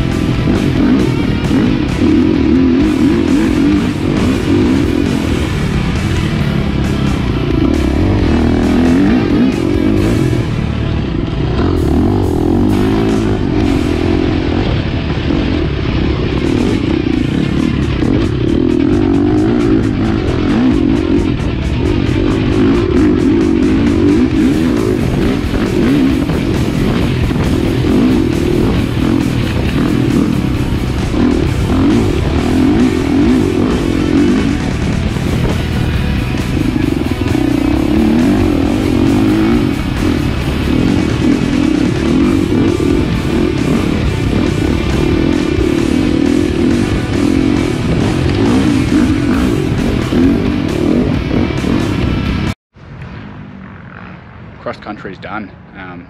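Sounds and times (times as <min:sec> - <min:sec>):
guitar music: 0:00.0 - 0:52.6
dirt bike engine revving: 0:00.0 - 0:55.4.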